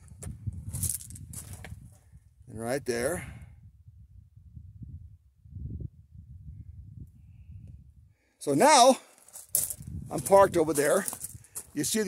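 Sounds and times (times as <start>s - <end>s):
wind rumble on microphone: 0.0s - 8.2s, 9.5s - 12.0s.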